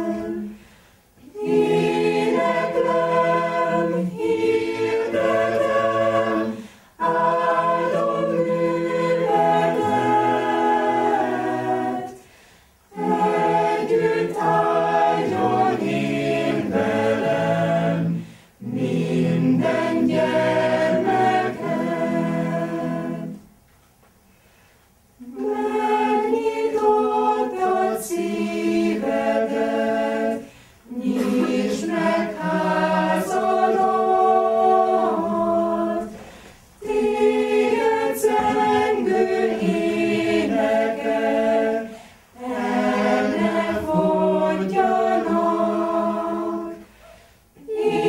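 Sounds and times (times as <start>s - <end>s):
choir singing a cappella: 0.0s - 23.5s, 25.2s - 48.0s.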